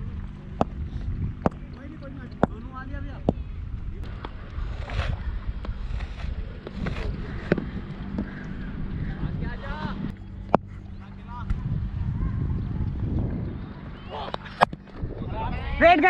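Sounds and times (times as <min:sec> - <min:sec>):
distant voices calling: 0:00.0 - 0:16.0
wind buffeting microphone: 0:00.0 - 0:16.0
sharp taps: 0:01.4 - 0:02.6.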